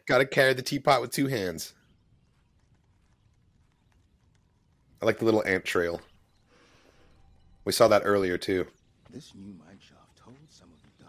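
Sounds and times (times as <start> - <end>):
faint irregular clicks: 1.7 - 7.7.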